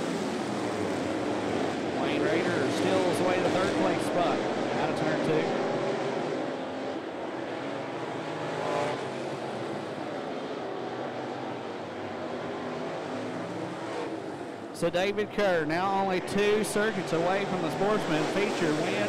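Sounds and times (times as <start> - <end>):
race car engines at speed: 0.0 - 19.0.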